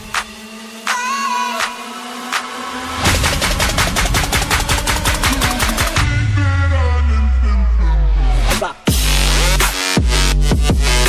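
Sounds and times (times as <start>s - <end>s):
deep bass drop: 2.8s - 11.0s.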